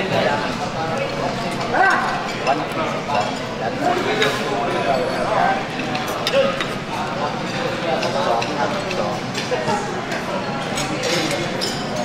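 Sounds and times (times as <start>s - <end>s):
indistinct chatter of voices: 0.0s - 12.0s
knife and fork clinking on plate: 10.7s - 12.0s.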